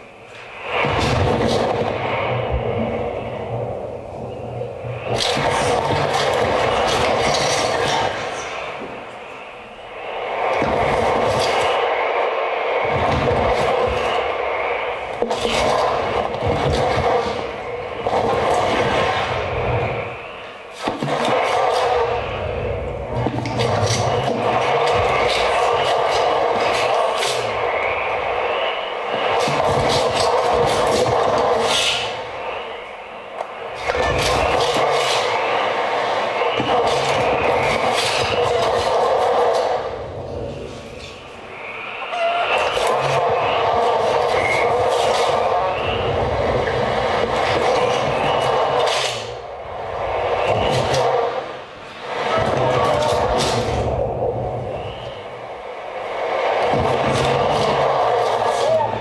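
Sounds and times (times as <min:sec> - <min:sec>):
crackles: 0:00.0 - 0:59.0.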